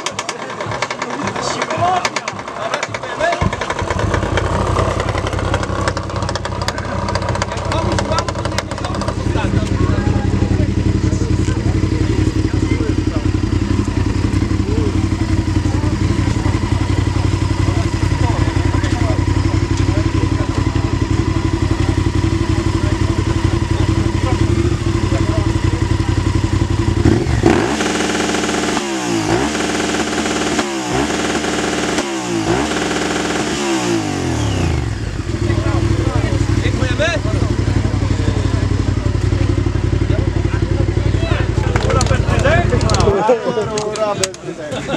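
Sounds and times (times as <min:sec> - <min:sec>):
motorcycle engine idling and revving: 0:00.0 - 0:44.9.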